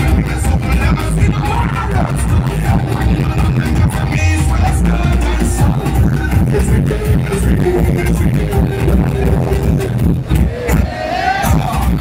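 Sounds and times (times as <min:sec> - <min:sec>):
loud music with heavy bass beat: 0:00.0 - 0:12.0.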